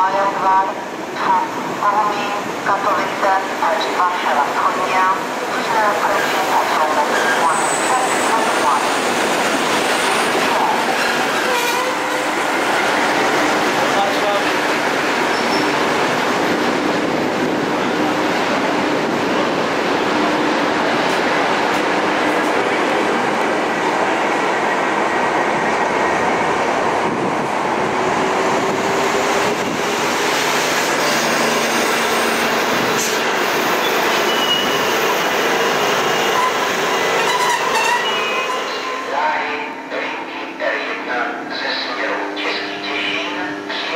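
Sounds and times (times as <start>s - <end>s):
trains passing: 0.0s - 43.9s.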